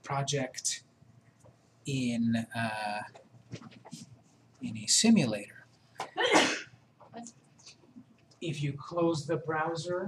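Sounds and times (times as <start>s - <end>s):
man coughing: 6.2s - 6.7s.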